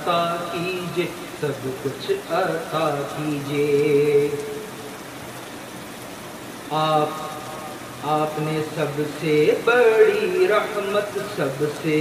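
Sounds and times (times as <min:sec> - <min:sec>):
man singing: 0:00.0 - 0:04.7, 0:06.7 - 0:12.0
rain hissing: 0:00.0 - 0:12.0.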